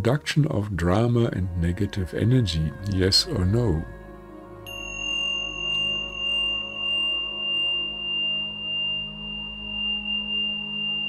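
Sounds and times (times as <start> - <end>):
low humming drone: 0.0 - 11.0
high pure ringing tone: 4.6 - 11.0.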